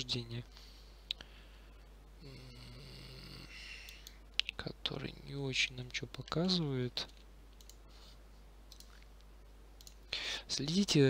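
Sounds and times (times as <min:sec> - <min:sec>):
man humming: 0:02.2 - 0:04.0.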